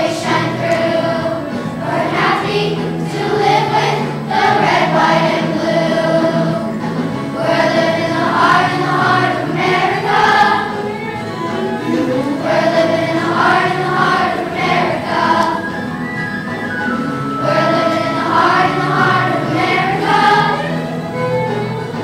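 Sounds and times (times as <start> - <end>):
choir singing: 0.0 - 10.9, 11.8 - 16.1, 16.8 - 20.9.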